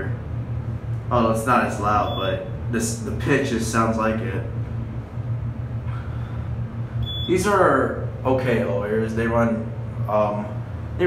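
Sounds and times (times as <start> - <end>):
elevator cab humming: 0.0 - 11.0.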